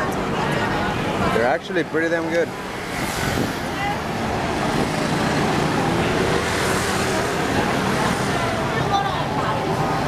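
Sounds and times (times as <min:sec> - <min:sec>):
city street traffic noise: 0:00.0 - 0:10.0
bus running close by: 0:02.2 - 0:10.0.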